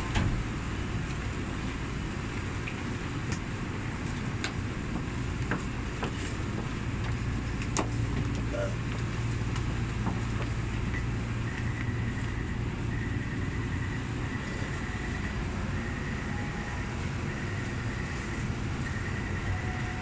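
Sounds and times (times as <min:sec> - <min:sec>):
train low rumble: 0:00.0 - 0:20.0.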